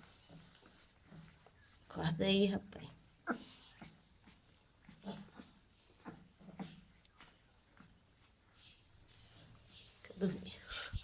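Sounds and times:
puppies grunting and squeaking: 0:02.4 - 0:10.0.

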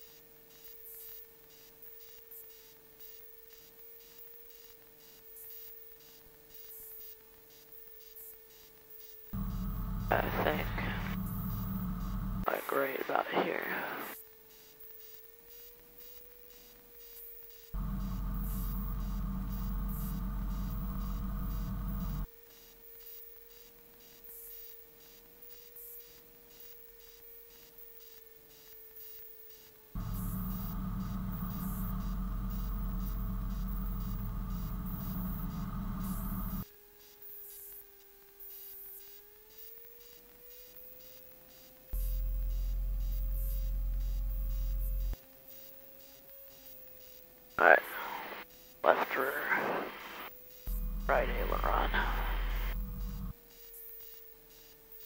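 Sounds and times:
steady whining tone: 0:09.4 - 0:14.2, 0:17.8 - 0:22.3, 0:30.0 - 0:36.6, 0:42.0 - 0:45.2, 0:47.6 - 0:53.4.

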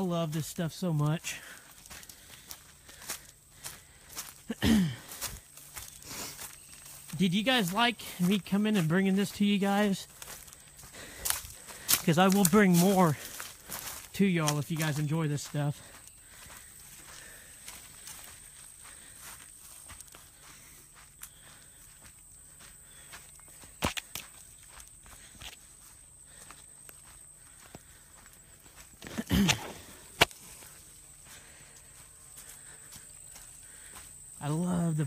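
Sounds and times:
footsteps on leafy dirt path: 0:00.0 - 0:35.0.

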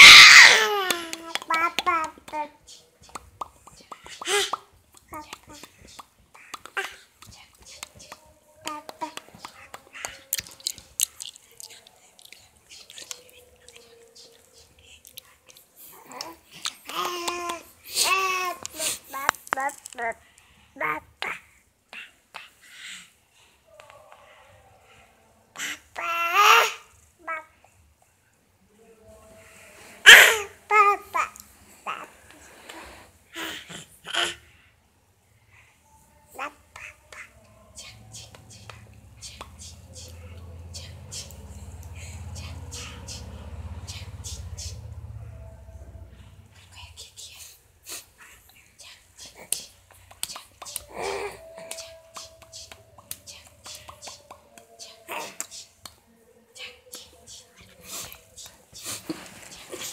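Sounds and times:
toddler calling loudly: 0:00.0 - 0:02.1
toddler babbling: 0:00.0 - 0:02.6, 0:15.9 - 0:20.1, 0:25.6 - 0:27.6, 0:30.1 - 0:32.1, 0:36.3 - 0:37.4
breathy mouth sounds: 0:02.6 - 0:20.0, 0:46.4 - 0:55.8.

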